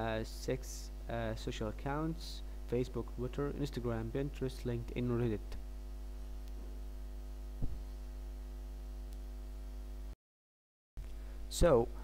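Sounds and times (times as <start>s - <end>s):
electrical mains hum: 0.0s - 10.2s, 11.0s - 12.0s
soft knock: 7.6s - 7.8s.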